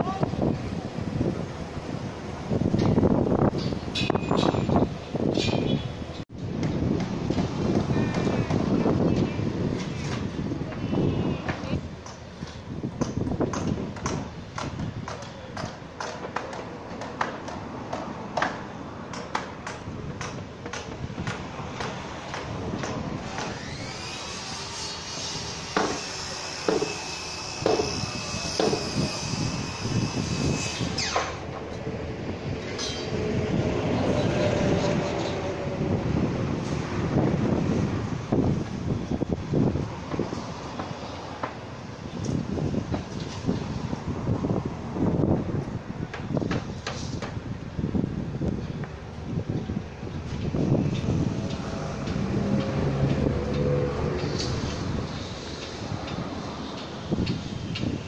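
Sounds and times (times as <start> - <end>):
wind buffeting microphone: 0.0 - 16.1, 16.7 - 24.5, 27.5 - 58.0
construction machinery running: 48.8 - 58.0.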